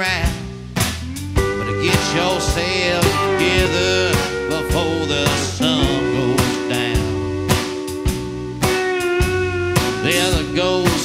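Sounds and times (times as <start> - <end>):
steady drum beat: 0.0 - 11.0
electric guitars bending notes: 1.0 - 11.0.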